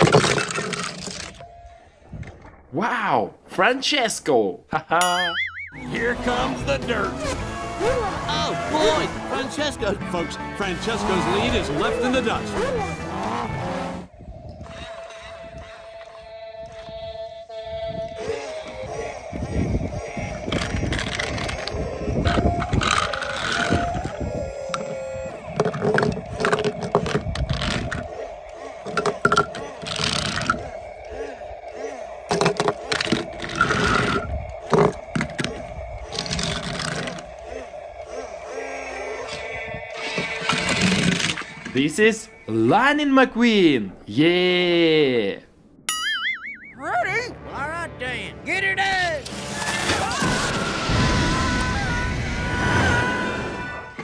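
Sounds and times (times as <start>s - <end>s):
background music: 5.6s - 14.1s
metal toy cars clicking on plastic: 20.4s - 24.0s.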